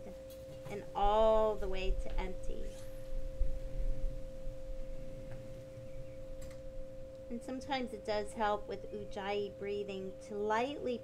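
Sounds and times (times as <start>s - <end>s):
ambient drone of pure tones: 0.0s - 11.0s
low rumble: 1.0s - 7.2s.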